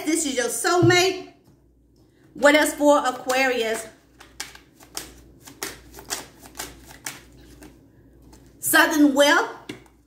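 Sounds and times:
cards being shuffled: 0:04.1 - 0:08.6.

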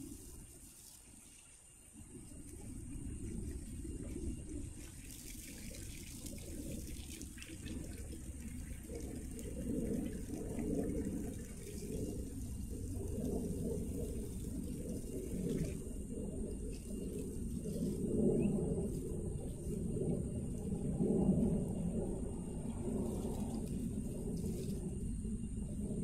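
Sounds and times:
hose water splashing on soil: 0:00.0 - 0:25.1.

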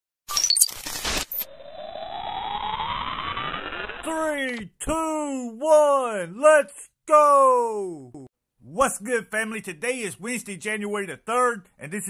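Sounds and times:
rising sweep tone: 0:01.4 - 0:04.1.

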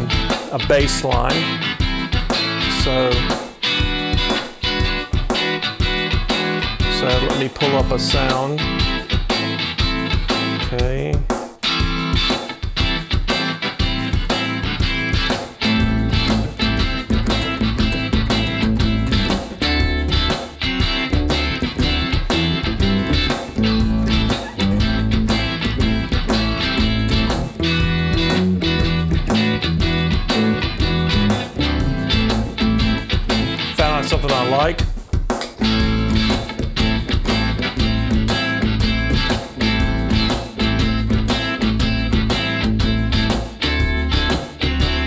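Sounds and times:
electric guitar: 0:00.0 - 0:10.9, 0:11.6 - 0:45.0
shuffle drum beat: 0:00.0 - 0:45.0.

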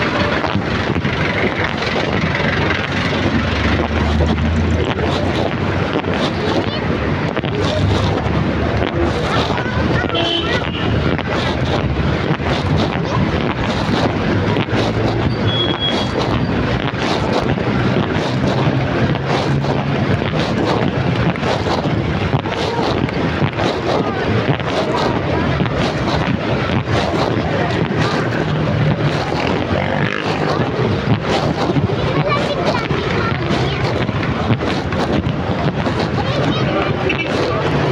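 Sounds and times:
vehicle engines running: 0:00.0 - 0:37.9
wind buffeting microphone: 0:00.0 - 0:37.9.

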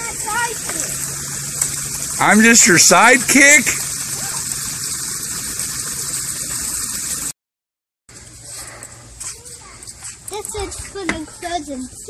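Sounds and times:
running water rushing: 0:00.0 - 0:07.4
child's faint voice: 0:09.2 - 0:12.0.

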